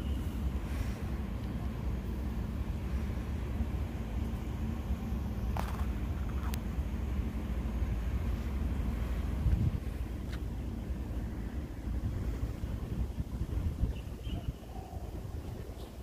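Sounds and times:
wind buffeting microphone: 8.0s - 16.0s.

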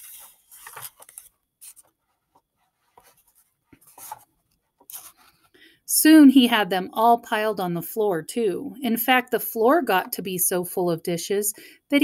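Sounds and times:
paper pages rustling: 0.0s - 5.5s.

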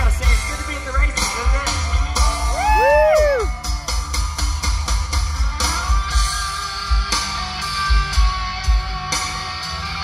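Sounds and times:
live rock band playing: 0.0s - 10.0s
person whooping: 2.5s - 3.6s.

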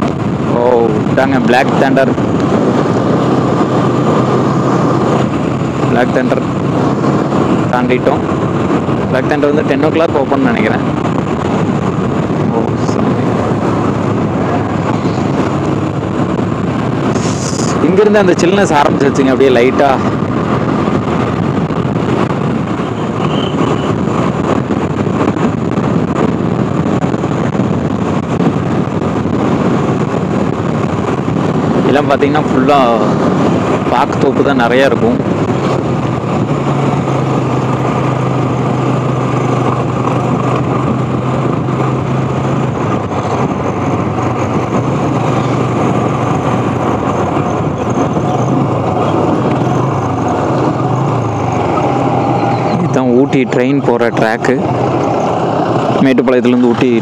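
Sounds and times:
low engine hum: 0.0s - 57.0s
vehicle road noise: 0.0s - 57.0s.

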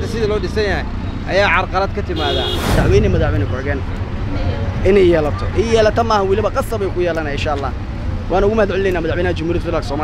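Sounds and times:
man speaking: 0.0s - 10.0s
street traffic rumble: 0.0s - 10.0s.

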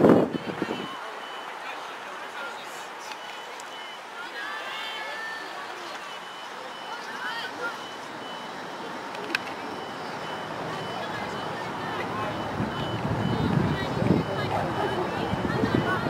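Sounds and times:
reversing alarm beeping: 0.2s - 16.0s.

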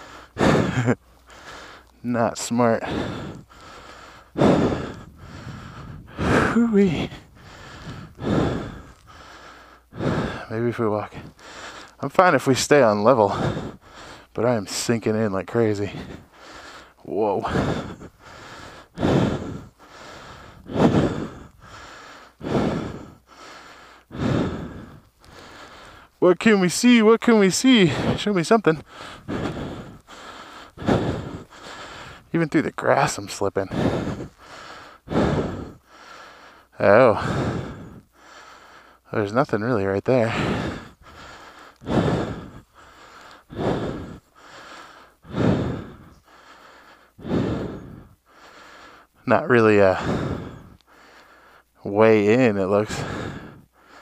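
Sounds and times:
quiet inhales: 0.0s - 2.0s, 2.8s - 12.0s, 13.2s - 14.4s, 15.8s - 26.2s, 28.8s - 32.4s, 33.2s - 39.1s, 40.2s - 51.8s, 52.9s - 54.0s
man breathing hard: 0.0s - 26.2s, 26.9s - 54.0s
man exhaling heavily: 40.3s - 49.1s, 50.0s - 51.3s.

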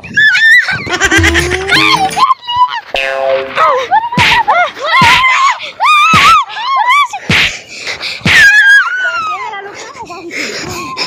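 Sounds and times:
young voices screaming: 0.0s - 2.9s, 3.6s - 7.2s, 8.2s - 9.6s.

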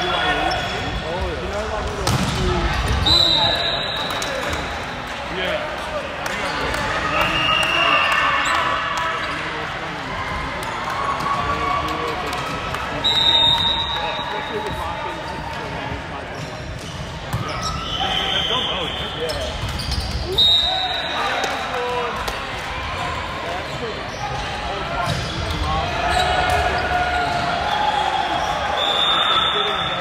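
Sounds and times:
sneakers squeaking on wooden court: 16.3s - 20.4s, 23.7s - 27.5s.

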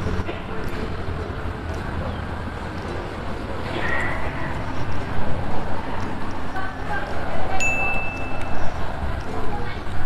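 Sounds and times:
chime tone: 7.6s - 8.5s.

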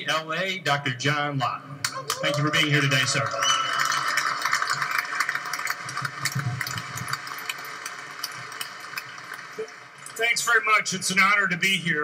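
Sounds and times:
crowd applauding: 1.9s - 10.2s.

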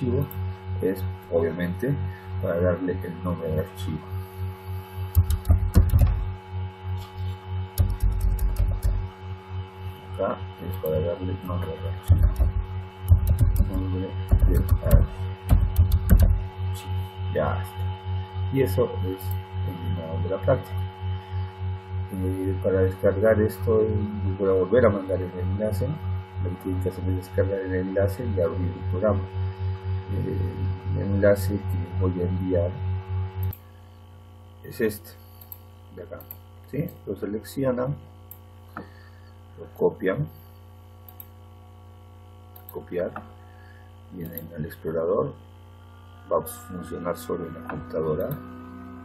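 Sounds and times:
electrical mains hum: 0.0s - 49.0s
mouse and desk clicks and thumps: 5.1s - 6.3s, 7.0s - 9.1s, 12.0s - 16.4s.

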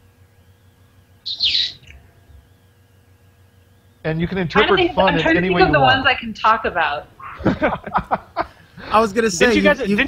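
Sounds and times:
faint electronic hum: 0.0s - 10.0s.

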